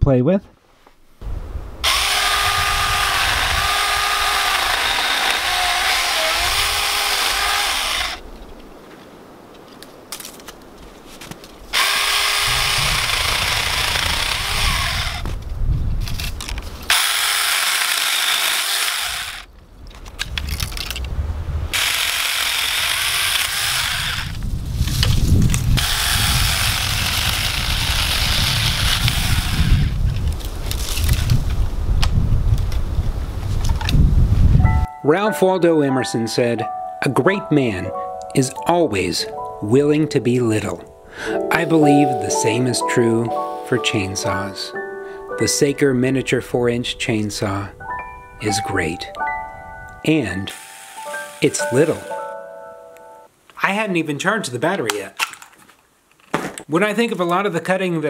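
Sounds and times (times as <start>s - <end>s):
wind rumble on microphone: 1.2s - 4.8s, 10.7s - 16.9s, 19.5s - 34.9s
chainsaw cutting branch: 1.8s - 8.2s, 11.7s - 15.4s, 16.2s - 19.5s, 21.7s - 31.5s, 50.5s - 52.2s.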